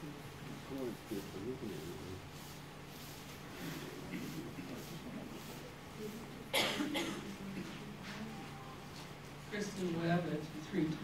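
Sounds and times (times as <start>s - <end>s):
person coughing: 6.5s - 7.3s.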